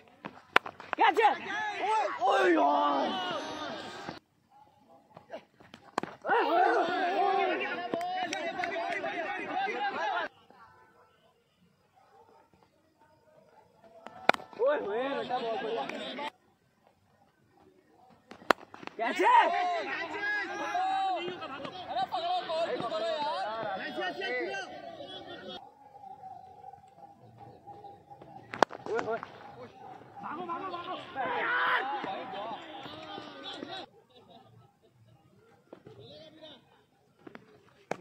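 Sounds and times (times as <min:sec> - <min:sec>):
bat hitting cricket ball: 0:00.2 - 0:01.1, 0:05.7 - 0:06.3, 0:14.0 - 0:14.6, 0:18.3 - 0:19.0, 0:28.3 - 0:29.4
men shouting: 0:01.0 - 0:04.2, 0:06.2 - 0:10.3, 0:19.0 - 0:25.6, 0:28.9 - 0:33.9.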